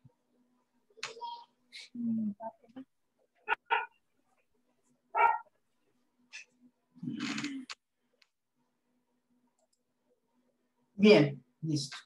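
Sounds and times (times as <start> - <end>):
dog barking: 3.4 - 4.0, 5.1 - 5.5.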